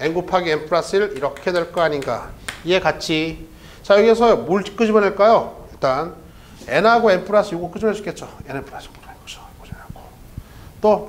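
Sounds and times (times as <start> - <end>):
man speaking: 0.0 - 10.2.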